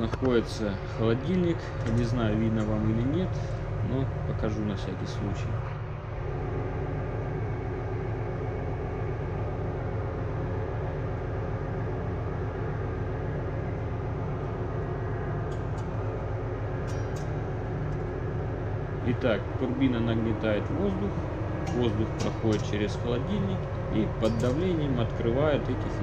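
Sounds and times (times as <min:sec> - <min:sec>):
engine room machinery drone: 0:00.0 - 0:26.0.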